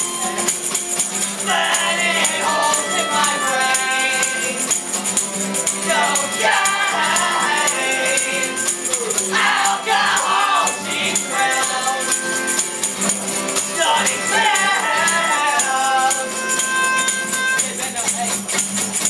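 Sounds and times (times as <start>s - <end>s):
fiddle: 0.0s - 17.8s
accordion: 0.0s - 19.0s
people singing: 1.2s - 17.8s.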